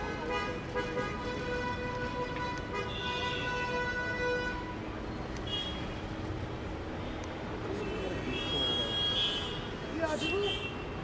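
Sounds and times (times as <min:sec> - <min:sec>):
street traffic rumble: 0:00.0 - 0:11.0.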